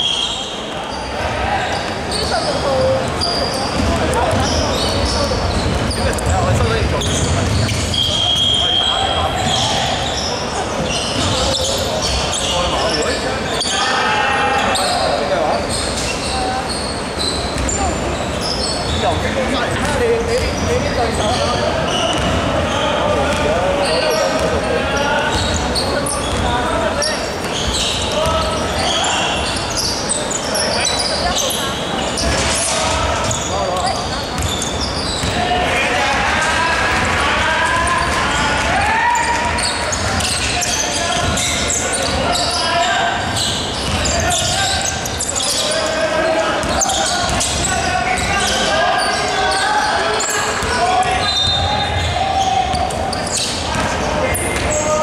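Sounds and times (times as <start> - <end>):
indistinct echoing voices: 0.0 - 55.0
referee's whistle blast: 7.9 - 9.6.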